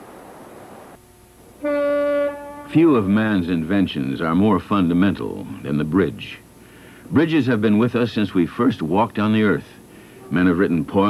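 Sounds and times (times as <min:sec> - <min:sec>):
faint outdoor hiss: 0:00.0 - 0:11.0
steady horn note: 0:01.6 - 0:03.2.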